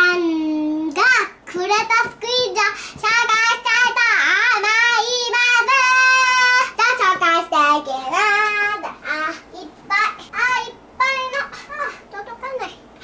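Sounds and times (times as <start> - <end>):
girl singing loudly: 0.0 - 12.7.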